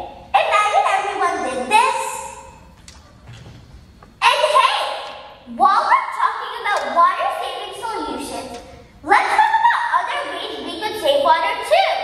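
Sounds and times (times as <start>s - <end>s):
girl's voice echoing in hall: 0.0s - 2.8s, 4.2s - 12.0s.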